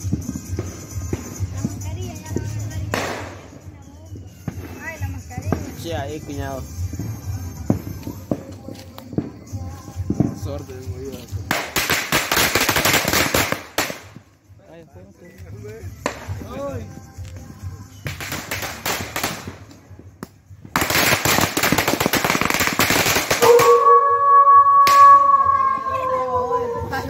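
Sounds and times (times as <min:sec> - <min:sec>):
firecrackers crackling: 0:00.0 - 0:14.5, 0:15.3 - 0:27.0.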